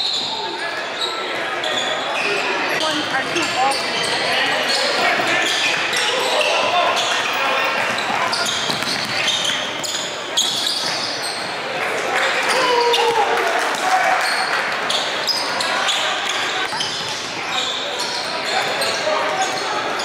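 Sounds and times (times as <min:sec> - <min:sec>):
sneaker squeaks: 0:00.0 - 0:11.6, 0:14.2 - 0:20.0
voices in a big hall: 0:00.0 - 0:20.0
ball bouncing on wooden court: 0:07.8 - 0:11.1.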